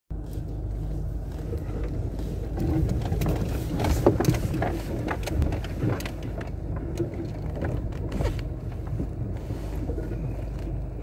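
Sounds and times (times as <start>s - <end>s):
low engine rumble: 0.1s - 11.0s
stones clicking under tyres: 1.2s - 11.0s.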